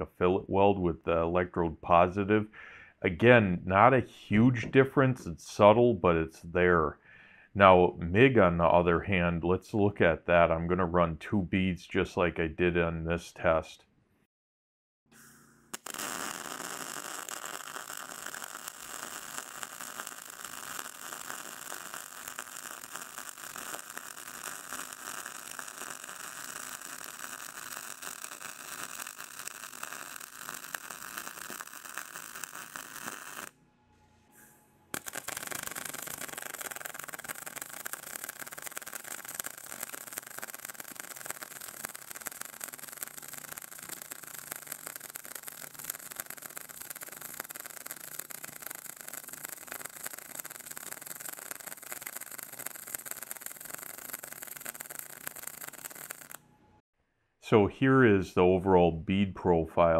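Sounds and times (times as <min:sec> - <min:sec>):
welder arc crackling: 0:15.7 - 0:33.6, 0:34.9 - 0:56.4.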